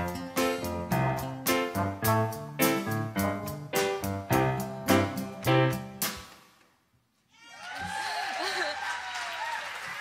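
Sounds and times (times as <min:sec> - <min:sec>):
audience clapping and whooping: 0:07.4 - 0:10.0.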